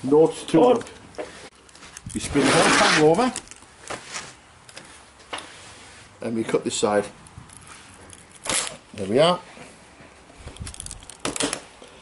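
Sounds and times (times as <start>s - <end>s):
knife cutting through lead: 2.4s - 3.3s
sharp crunch: 7.6s - 9.0s.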